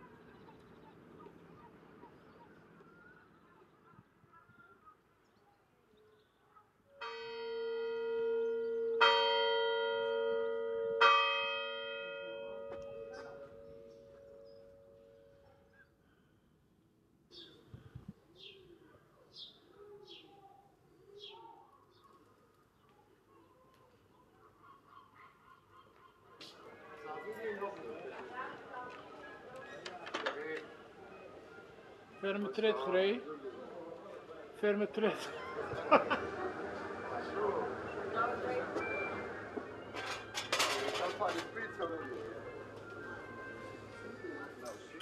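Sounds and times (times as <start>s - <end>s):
distant bird calls: 0.0s - 6.8s, 35.2s - 44.9s
church bell ringing: 7.0s - 15.5s.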